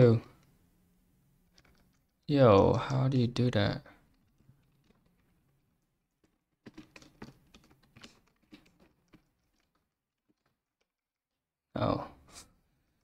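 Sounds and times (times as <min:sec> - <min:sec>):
faint keyboard typing: 0:01.5 - 0:02.9, 0:04.0 - 0:10.9.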